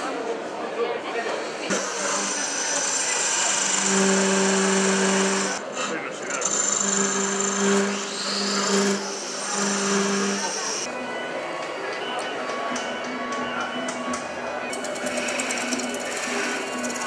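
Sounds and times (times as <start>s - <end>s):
gouge cutting wood on lathe: 1.5s - 10.9s, 14.7s - 17.0s.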